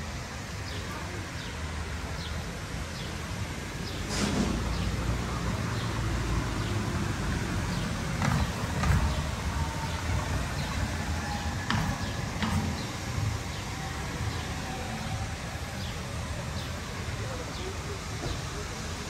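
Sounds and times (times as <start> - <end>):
low traffic rumble: 0.0 - 19.0.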